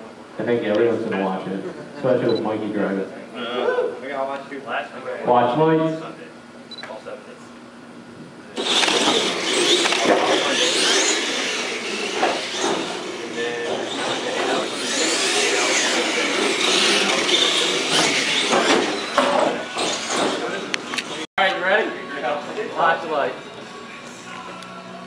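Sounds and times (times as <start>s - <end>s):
rc trucks racing: 8.6s - 21.2s.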